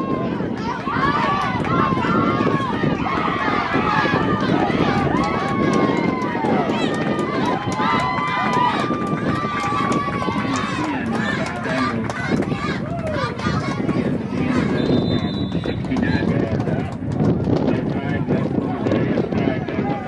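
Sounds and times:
crowd yelling and cheering: 0.0 - 20.0.

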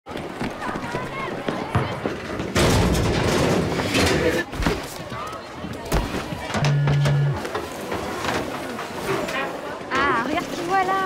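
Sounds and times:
quick running footsteps: 0.1 - 2.6.

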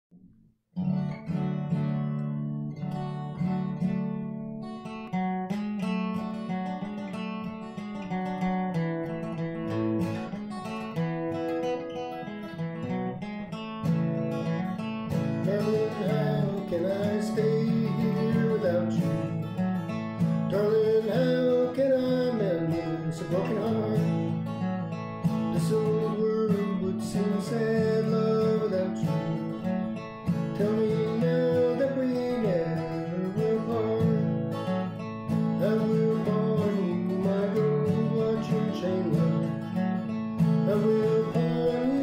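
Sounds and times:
acoustic guitar flatpicking: 0.1 - 42.0
person singing: 15.2 - 19.5, 20.5 - 24.5, 25.3 - 39.8, 40.4 - 42.0.

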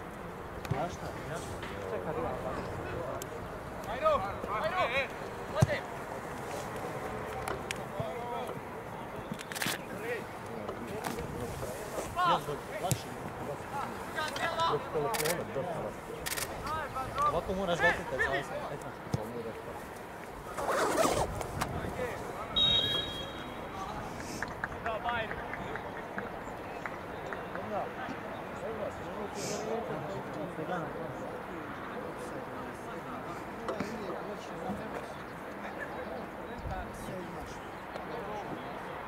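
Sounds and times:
voices calling and shouting: 0.0 - 39.0.

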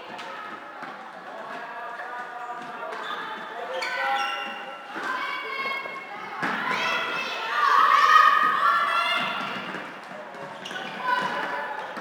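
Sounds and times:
shoes squeaking on court floor: 2.4 - 4.9, 9.4 - 12.0.

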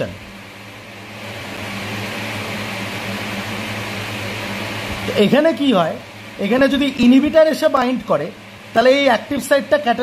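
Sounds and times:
electric motor hum with hiss: 0.0 - 10.0.

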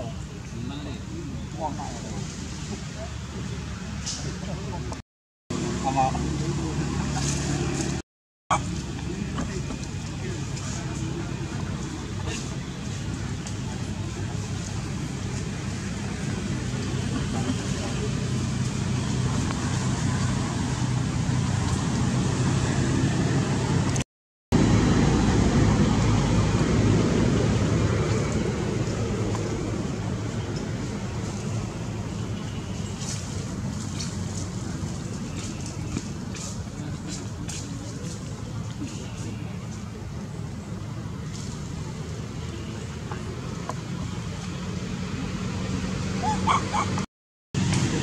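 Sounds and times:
low rumbling background noise: 0.0 - 24.0, 24.6 - 47.0
engine humming: 0.0 - 48.0.

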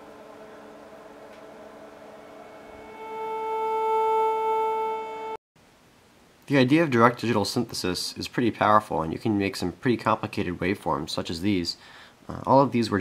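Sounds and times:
steady sine-wave tone: 0.0 - 5.4
faint hum: 0.0 - 13.0.

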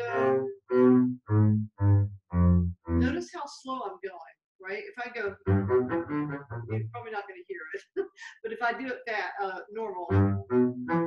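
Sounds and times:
bowed double bass notes: 0.0 - 3.2, 5.2 - 7.0, 10.1 - 11.0.

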